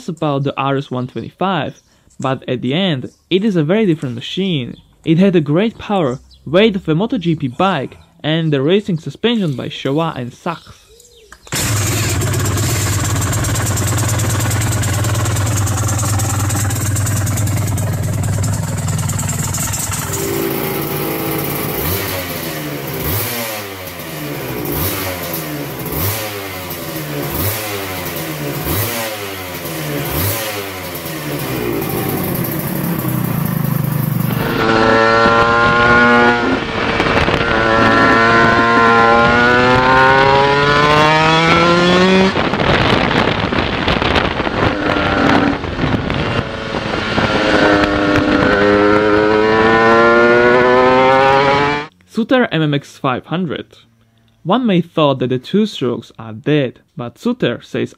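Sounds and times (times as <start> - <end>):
motorcycle accelerating through gears: 11.4 - 51.9
two-stroke motorcycle engine revving: 11.5 - 51.9.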